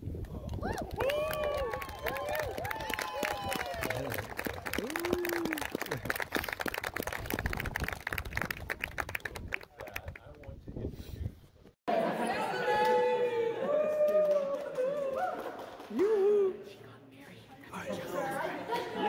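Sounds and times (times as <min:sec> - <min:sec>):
crowd clapping: 0:00.2 - 0:10.6, 0:13.9 - 0:16.5
whooping cheers: 0:00.5 - 0:05.8, 0:12.6 - 0:16.6.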